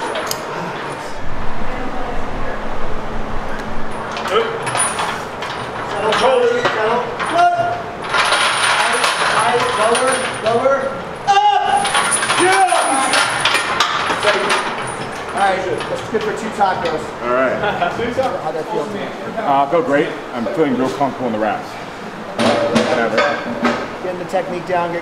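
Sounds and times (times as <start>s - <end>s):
men shouting encouragement: 11.2s - 13.2s.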